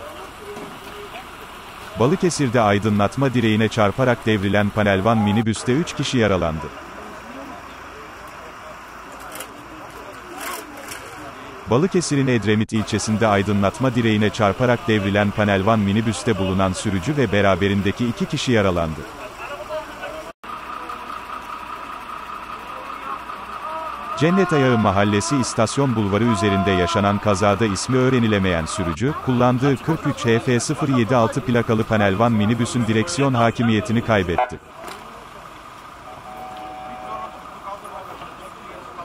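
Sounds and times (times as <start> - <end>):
faint crowd voices: 0.0 - 39.0
vehicle engine hum: 0.0 - 39.0
thin electronic tone: 5.0 - 5.5, 36.0 - 37.7.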